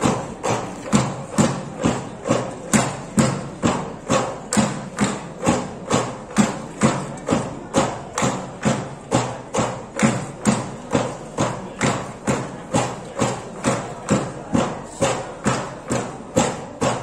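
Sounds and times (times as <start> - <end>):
bamboo poles knocking: 0.0 - 17.0.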